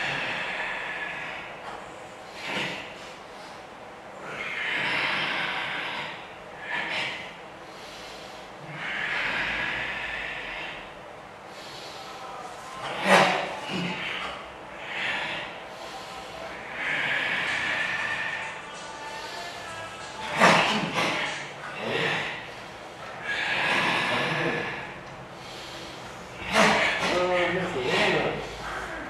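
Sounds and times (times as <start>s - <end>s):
hard hissing exhalations: 0.0s - 29.0s.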